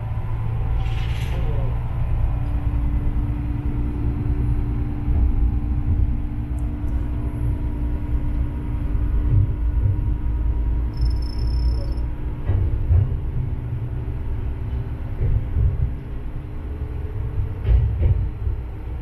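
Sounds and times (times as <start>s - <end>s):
diesel railcar engine rumbling: 0.0s - 19.0s.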